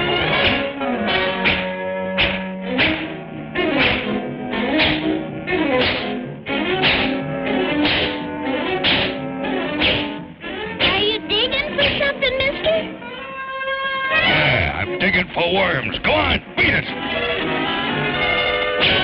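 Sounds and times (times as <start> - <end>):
orchestral cartoon music: 0.0 - 19.0
sharp whacking hits: 0.2 - 10.2, 10.8 - 11.2, 18.8 - 19.0.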